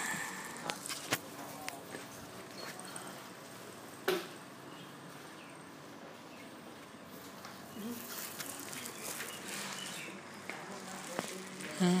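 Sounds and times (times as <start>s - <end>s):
faint background voices: 0.0s - 3.8s, 7.5s - 12.0s
outdoor ambient noise: 0.0s - 12.0s.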